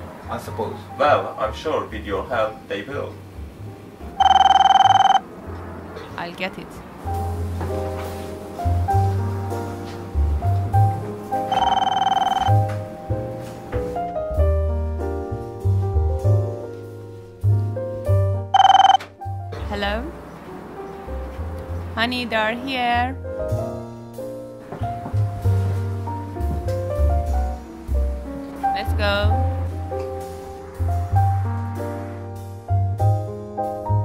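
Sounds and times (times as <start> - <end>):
piano music with bass line: 0.0 - 6.2, 6.8 - 34.0
door intercom buzz ring: 4.2 - 5.2, 11.5 - 12.8, 18.6 - 19.1
intercom electronic trill: 11.5 - 12.6.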